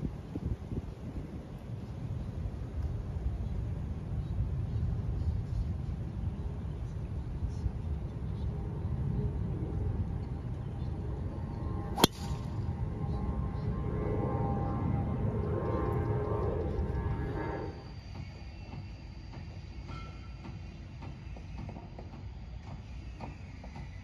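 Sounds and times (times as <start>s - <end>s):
steady low rumble: 0.0s - 17.9s
golf club striking ball: 12.0s - 12.5s.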